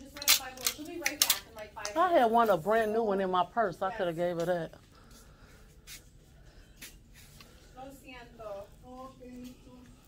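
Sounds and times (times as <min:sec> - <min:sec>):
quiet room hum: 0:00.0 - 0:10.0.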